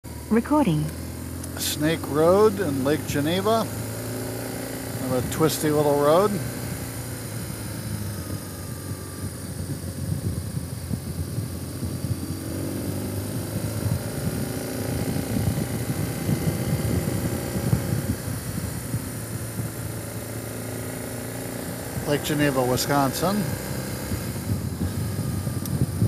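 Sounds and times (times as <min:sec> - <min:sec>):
motorcycle engine running: 0:00.0 - 0:26.0
wind rumble on microphone: 0:06.4 - 0:20.2, 0:23.2 - 0:26.0.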